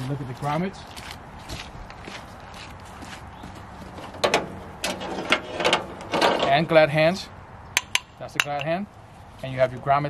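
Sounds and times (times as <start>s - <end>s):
faint footsteps: 0.0s - 5.2s
metal couplings knocking together: 7.8s - 8.7s.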